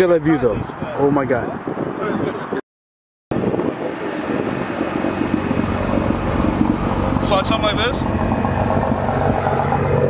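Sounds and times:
car engine idling: 3.9 - 10.0.

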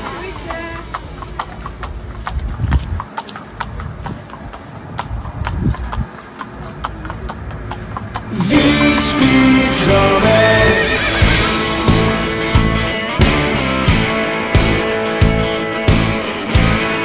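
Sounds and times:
hooves clip-clopping on asphalt: 0.0 - 10.4.

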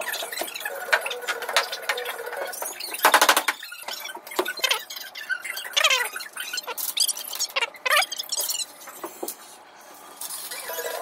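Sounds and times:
furniture parts clicking and knocking: 2.8 - 4.8
squeaks: 3.6 - 8.7.

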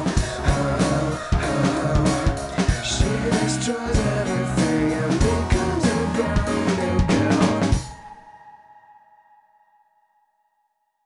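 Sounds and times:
pop-rock band playing: 0.0 - 8.0.

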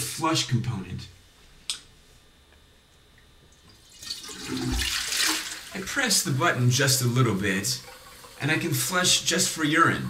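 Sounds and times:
toilet flushing: 3.7 - 10.0.

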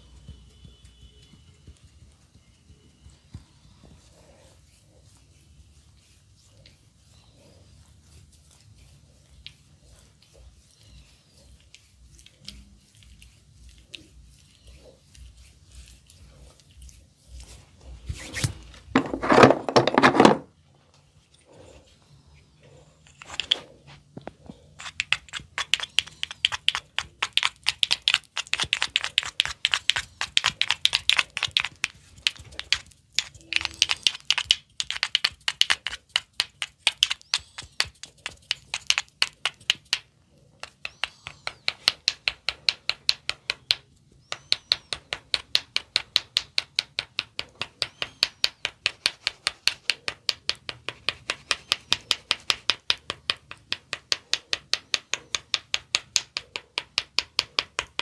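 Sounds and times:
wooden tools clicking on ear: 24.7 - 58.0.

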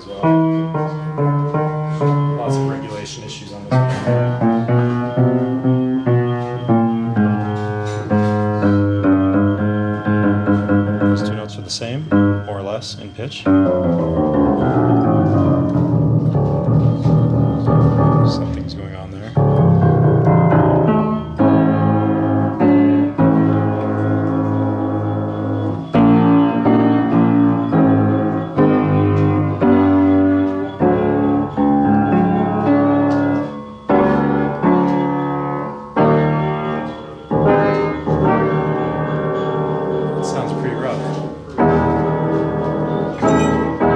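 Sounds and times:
loud piano chords: 0.0 - 43.9.

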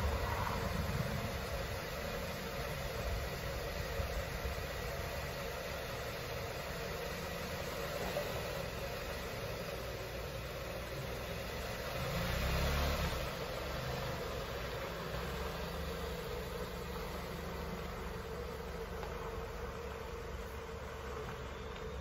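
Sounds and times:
car engine pulling away: 0.0 - 3.4, 6.8 - 22.0.

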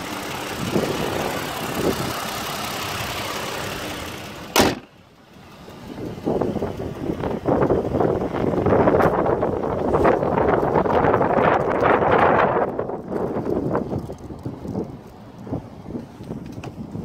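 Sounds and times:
wind buffeting microphone: 0.0 - 3.0, 5.8 - 17.0.

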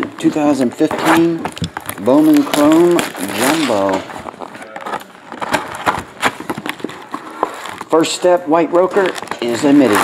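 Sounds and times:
cardboard box tearing open: 2.0 - 7.8.

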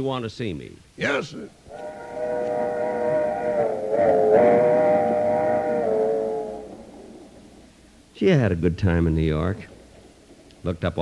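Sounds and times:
train whistle chord: 1.7 - 7.0.

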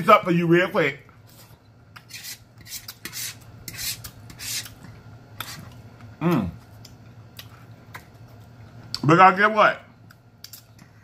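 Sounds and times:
fork scraping a plate: 2.0 - 4.8, 5.4 - 5.8.

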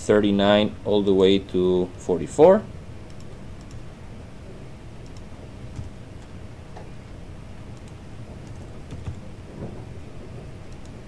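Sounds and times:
low room hum: 0.0 - 11.0
keystrokes on computer keyboard: 3.1 - 3.8, 5.0 - 6.3, 7.7 - 9.2.

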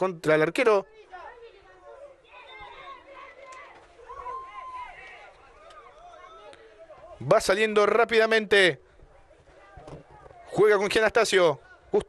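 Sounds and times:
drawn-out shout: 1.1 - 7.1.

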